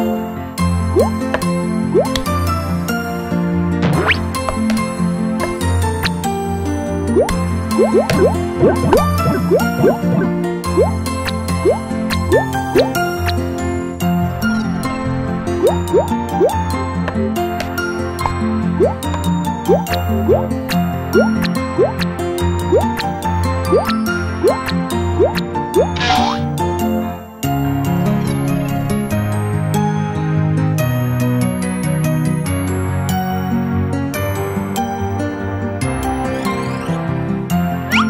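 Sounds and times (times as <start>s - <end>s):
playful cartoon music: 0.0s - 38.0s
rising bloop sound effects: 7.2s - 11.0s.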